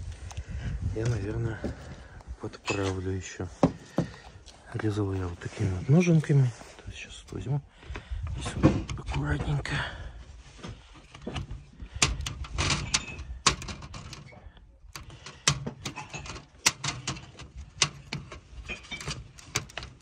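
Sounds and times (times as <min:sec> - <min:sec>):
mesh rattling: 0:11.2 - 0:20.0.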